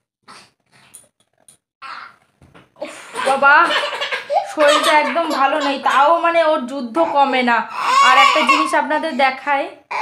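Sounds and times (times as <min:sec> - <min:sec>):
baby whimpering: 0:07.0 - 0:09.0.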